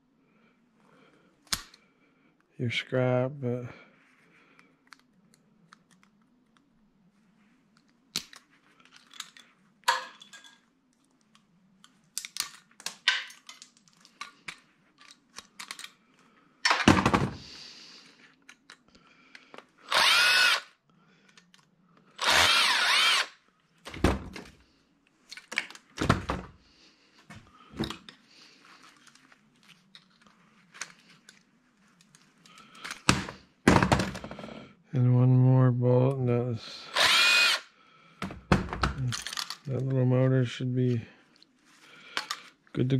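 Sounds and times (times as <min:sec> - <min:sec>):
metal parts clicking and clinking: 0:08.2 - 0:10.7, 0:11.8 - 0:16.0, 0:39.0 - 0:39.9
cordless drill whining: 0:19.8 - 0:20.8, 0:22.2 - 0:23.4, 0:36.8 - 0:37.7.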